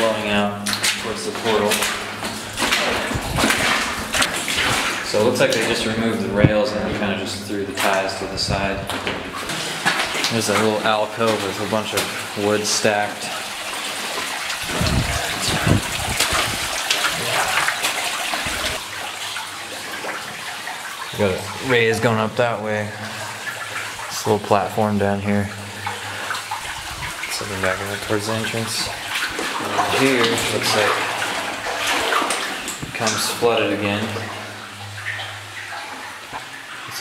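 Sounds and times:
footsteps splashing through water: 0:00.0 - 0:06.0, 0:07.7 - 0:12.5, 0:13.3 - 0:21.7, 0:25.7 - 0:37.0
water rushing: 0:00.0 - 0:37.0.

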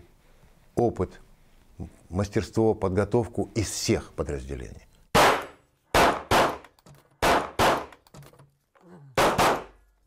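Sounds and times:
pistol shots with echo: 0:05.2 - 0:08.0, 0:09.2 - 0:09.8.

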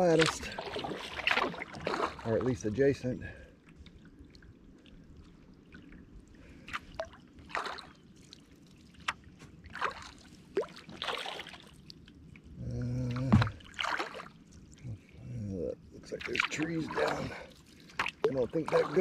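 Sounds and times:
paddle splashing in water: 0:00.0 - 0:02.5, 0:06.6 - 0:11.9, 0:13.2 - 0:14.5, 0:16.2 - 0:19.0.

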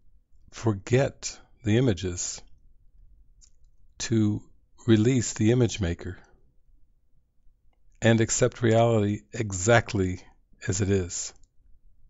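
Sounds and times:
man speaking: 0:00.6 - 0:02.5, 0:04.0 - 0:06.3, 0:08.0 - 0:11.4.

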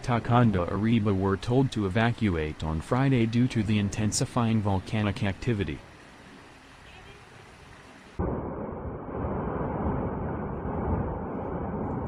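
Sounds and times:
volcano rumbling: 0:08.2 - 0:12.0.

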